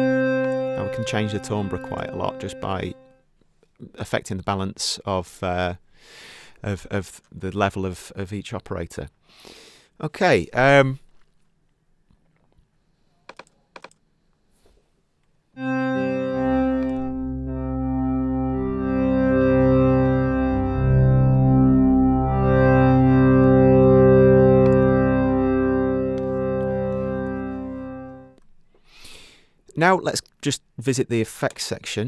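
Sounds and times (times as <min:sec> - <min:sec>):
synth pad chords: 0:00.0 - 0:03.1, 0:15.6 - 0:28.4.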